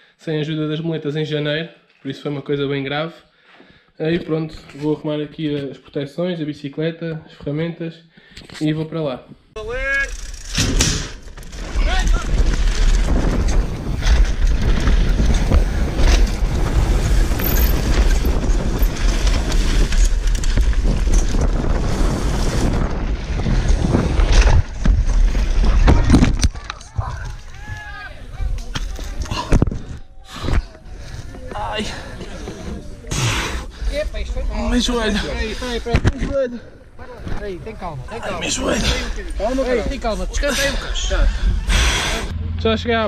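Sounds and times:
bike tyres rumbling on rough ground: 9.8 - 30.0
wind rush on microphone: 10.8 - 31.3.

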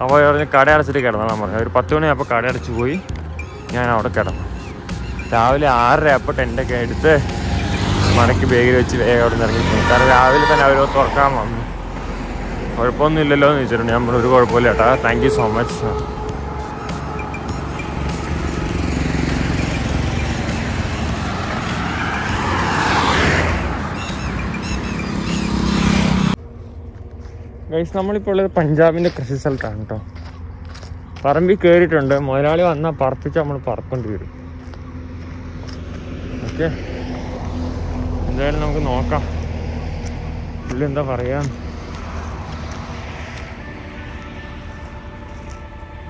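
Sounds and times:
roadside traffic: 0.0 - 46.0
soft background music: 0.0 - 46.0
vehicle passing: 0.0 - 46.0
low engine hum: 1.7 - 46.0.

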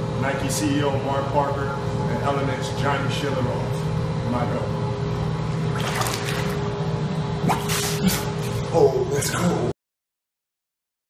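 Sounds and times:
steady low hum: 0.0 - 9.8.

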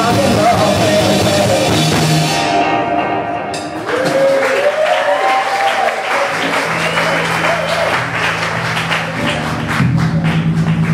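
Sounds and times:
audience applauding: 3.8 - 10.9.

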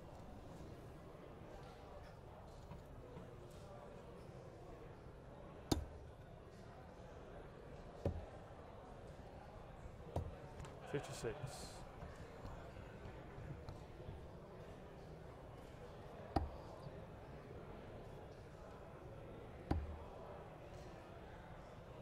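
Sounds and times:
darts thudding into dartboard: 19.7 - 20.0.

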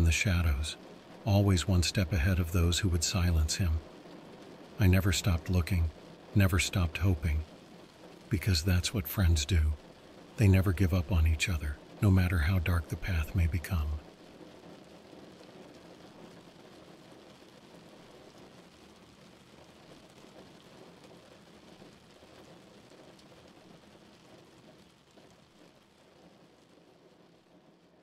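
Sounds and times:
heavy rain falling on a car: 0.0 - 28.0.

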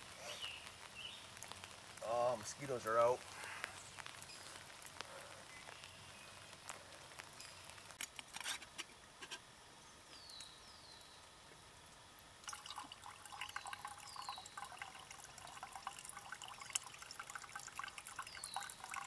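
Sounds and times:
faint clicks and crackles: 0.0 - 9.5
coffee pouring into a mug: 12.4 - 19.0.

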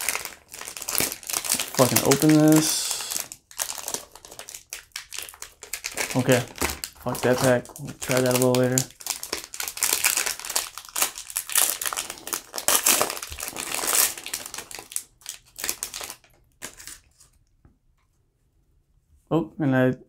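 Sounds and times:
foil wrapper crinkling and tearing: 0.0 - 17.4.

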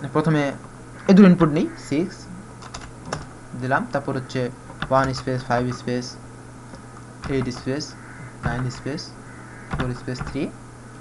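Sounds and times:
keyboard keystrokes: 2.6 - 3.3, 4.7 - 5.8, 7.2 - 7.7, 8.4 - 8.9, 9.7 - 10.4.

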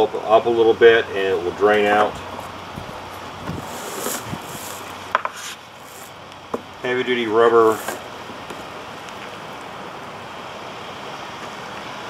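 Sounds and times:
low outdoor background hiss: 0.0 - 12.0
hands rubbing plastic cooler: 3.5 - 6.2, 7.6 - 8.1.

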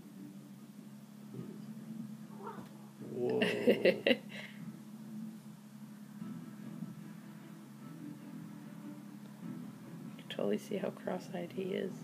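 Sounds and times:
person laughing: 3.1 - 4.6.

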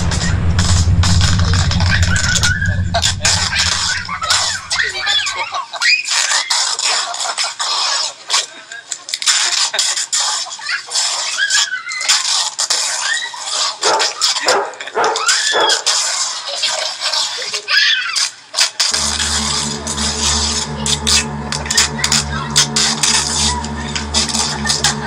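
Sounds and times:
music with low sustained tones: 0.0 - 5.4, 19.0 - 25.0.

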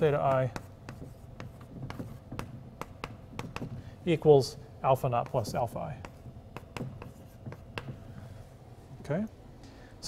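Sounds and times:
chalk tapping on blackboard: 0.0 - 3.9, 5.0 - 8.4.

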